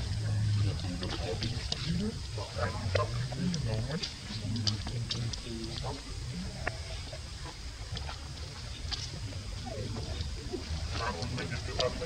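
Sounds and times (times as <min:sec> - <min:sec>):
indistinct voices: 0:00.0 - 0:12.0
steady low hum: 0:00.0 - 0:12.0.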